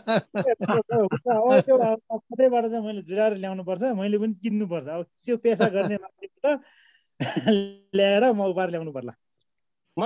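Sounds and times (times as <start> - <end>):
man's voice in fragments: 0.0 - 6.7.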